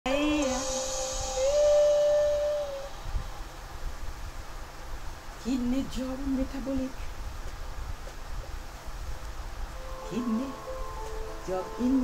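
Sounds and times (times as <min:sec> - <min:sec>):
woman singing long note: 0:00.1 - 0:03.9, 0:09.8 - 0:12.0.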